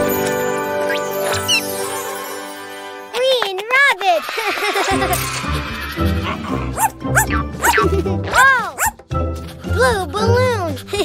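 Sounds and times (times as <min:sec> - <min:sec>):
light children's music: 0:00.0 - 0:11.0
cartoon puppy barking and yipping: 0:05.9 - 0:09.0.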